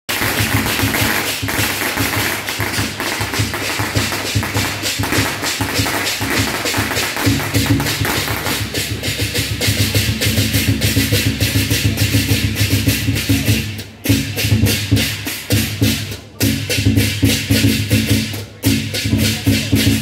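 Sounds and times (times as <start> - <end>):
procession music with fast drums: 0.1 - 20.0
sharp percussion strikes: 0.1 - 20.0.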